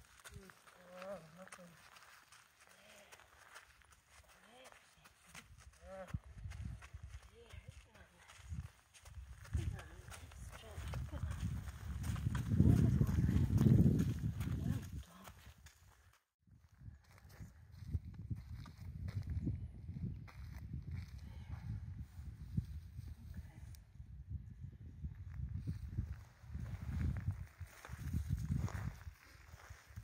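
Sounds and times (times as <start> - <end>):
horse hooves on gravel: 0.0 - 16.2.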